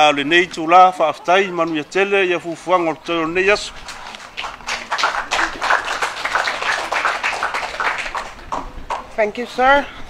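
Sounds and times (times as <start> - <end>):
audience applauding: 3.9 - 8.6.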